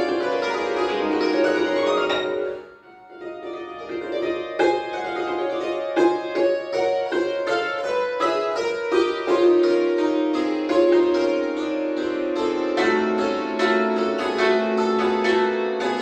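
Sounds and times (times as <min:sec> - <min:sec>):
cimbalom played with mallets: 0:00.0 - 0:16.0.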